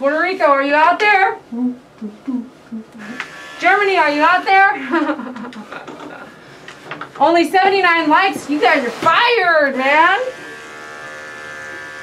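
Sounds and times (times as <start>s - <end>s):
electric clippers buzzing: 3.0s - 4.7s, 9.8s - 12.0s.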